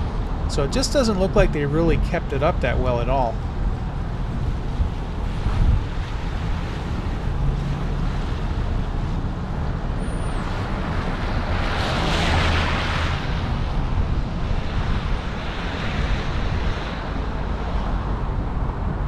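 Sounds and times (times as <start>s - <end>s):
rush of noise: 0.0s - 9.8s
car rumbling slowly: 0.0s - 19.0s
wind on microphone: 0.0s - 19.0s.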